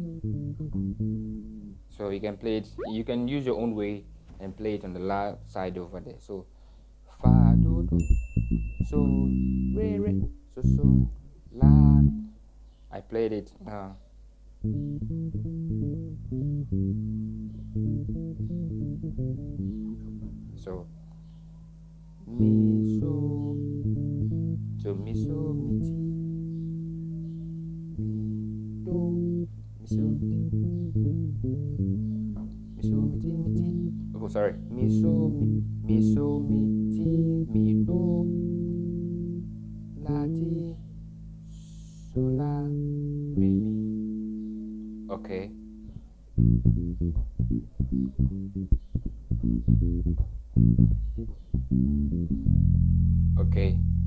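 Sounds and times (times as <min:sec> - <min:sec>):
electric bass guitar notes: 0:00.0 - 0:06.0, 0:07.2 - 0:12.4, 0:14.6 - 0:54.0.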